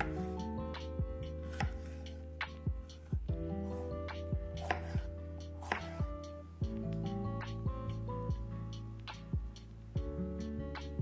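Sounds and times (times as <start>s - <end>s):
knife cutting pepper on board: 0.0s - 0.4s, 1.3s - 3.1s, 4.2s - 6.1s
background music with beat: 0.0s - 11.0s.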